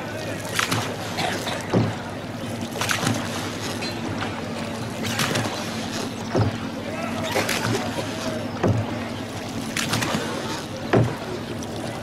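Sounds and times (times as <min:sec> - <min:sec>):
voices murmuring: 0:00.0 - 0:02.8, 0:03.6 - 0:12.0
boat engine low hum: 0:00.0 - 0:12.0
short knocks: 0:01.6 - 0:02.0, 0:06.3 - 0:06.7, 0:08.6 - 0:09.0, 0:10.9 - 0:11.3.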